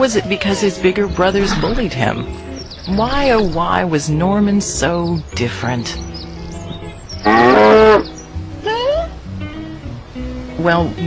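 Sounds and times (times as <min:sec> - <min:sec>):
cow-like moo: 0:07.3 - 0:08.0.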